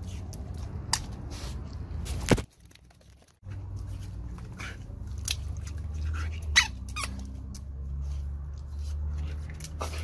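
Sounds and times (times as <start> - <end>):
water balloon squeaks and snaps: 6.4 - 7.6.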